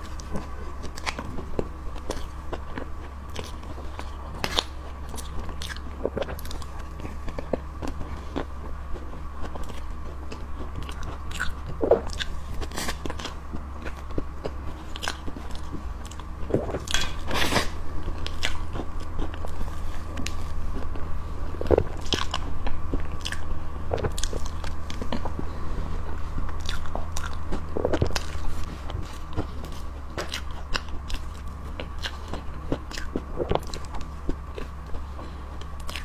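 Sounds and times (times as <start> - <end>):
steady low hum: 0.0 - 36.0
wet chewing mouth sounds: 0.0 - 36.0.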